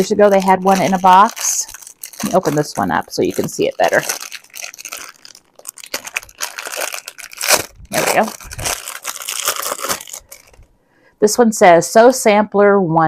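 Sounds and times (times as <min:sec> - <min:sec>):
packaging crinkling and tearing: 0:00.0 - 0:10.7.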